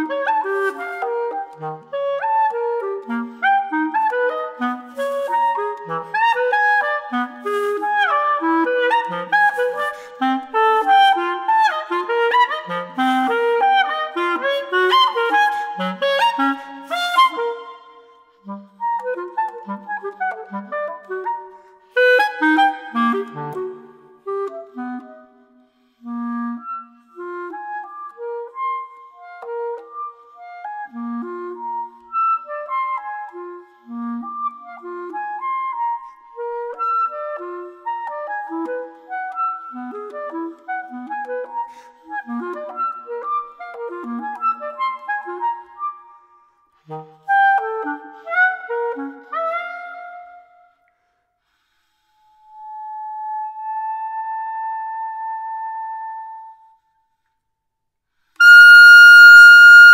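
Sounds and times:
clarinet playing notes: 0:00.0 - 0:56.9, 0:58.3 - 0:59.9.

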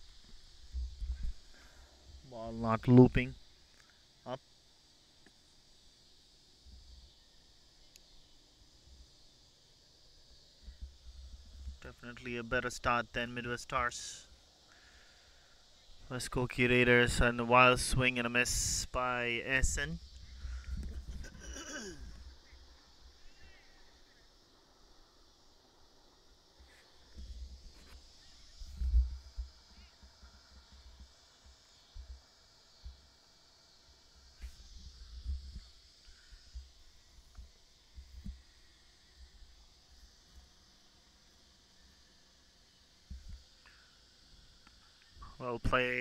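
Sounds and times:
high-pitched insect chorus: 0:00.0 - 0:46.0.

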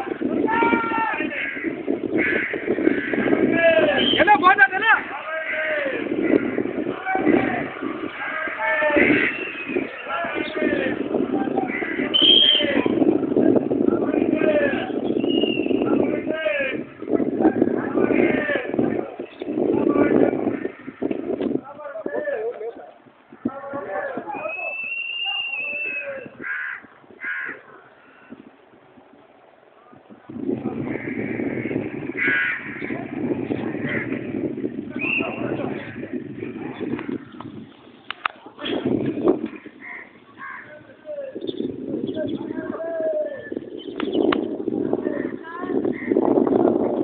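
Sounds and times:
steady rushing noise: 0:00.0 - 0:21.8, 0:26.9 - 0:47.0
voices: 0:00.0 - 0:47.0
harsh caw-like bird calls: 0:01.2 - 0:03.5, 0:05.3 - 0:06.8, 0:08.2 - 0:10.6, 0:11.6 - 0:12.3, 0:20.4 - 0:21.1, 0:26.4 - 0:28.4, 0:30.9 - 0:34.7, 0:36.8 - 0:37.6, 0:39.5 - 0:41.6, 0:45.2 - 0:46.2.

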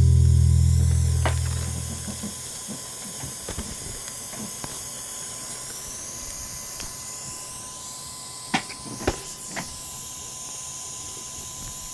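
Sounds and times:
steady hiss: 0:00.0 - 0:07.2.

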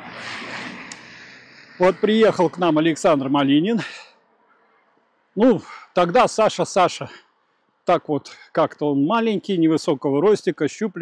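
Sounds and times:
car tyres hissing on wet road: 0:00.0 - 0:02.6.

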